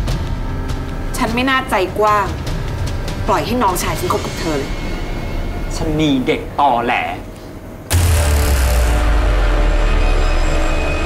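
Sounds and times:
low rumbling drone: 7.6s - 11.0s
loud dramatic hit: 7.9s - 11.0s.

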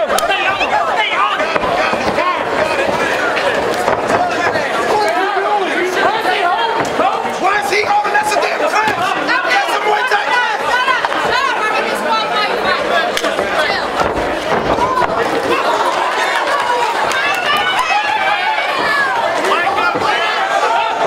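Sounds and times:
crowd shouting and chattering: 0.0s - 21.0s.

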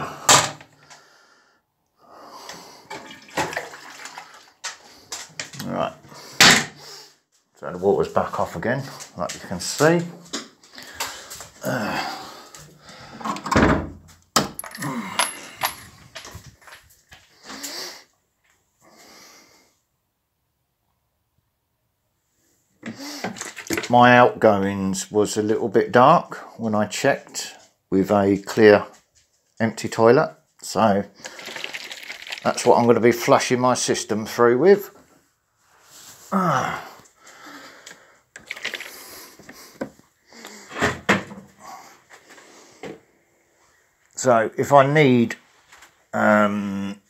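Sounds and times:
man speaking: 5.5s - 6.1s, 7.6s - 10.3s, 23.7s - 29.0s, 29.6s - 31.2s, 32.4s - 35.0s, 44.2s - 45.4s, 46.1s - 47.0s.

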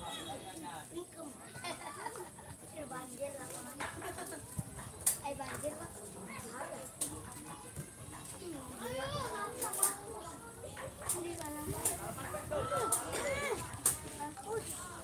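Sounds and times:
voices calling and chattering: 0.0s - 15.0s.

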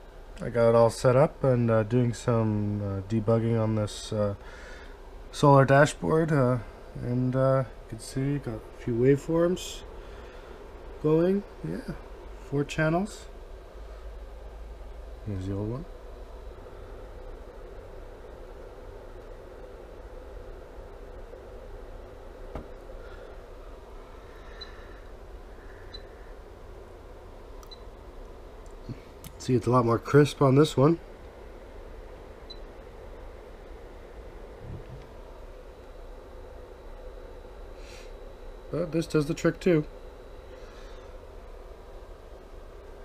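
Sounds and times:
electronics humming and hissing: 0.0s - 43.0s
faint hiss: 37.7s - 38.8s.

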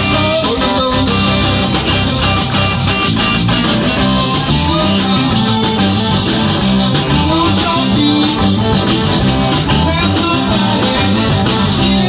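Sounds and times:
bass guitar: 0.0s - 12.0s
button accordion: 0.0s - 12.0s
drum kit: 0.0s - 12.0s
electric guitars: 0.0s - 12.0s.

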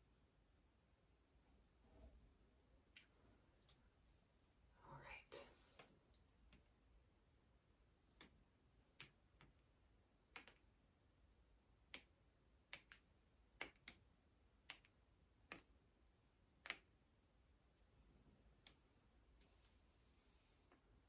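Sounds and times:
faint sharp clicks: 11.9s - 15.8s.

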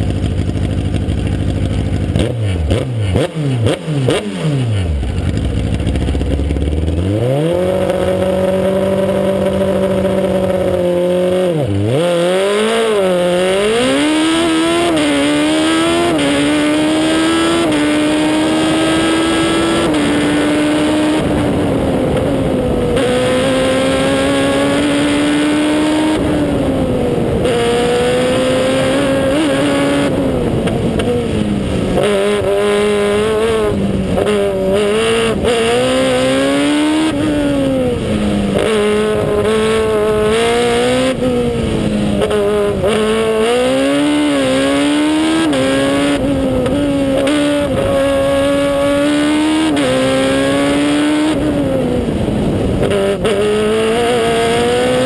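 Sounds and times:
race car engine accelerating: 2.1s - 55.0s.

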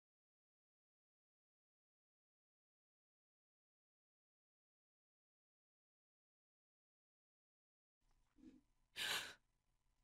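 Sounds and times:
person sighing: 9.0s - 9.4s.

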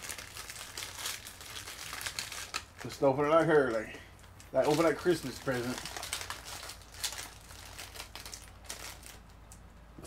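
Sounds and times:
plastic snack bag crinkling: 0.0s - 9.6s.

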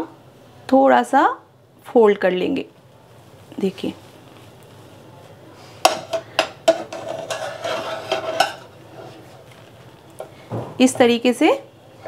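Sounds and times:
spatula scraping frying pan: 5.8s - 9.7s.

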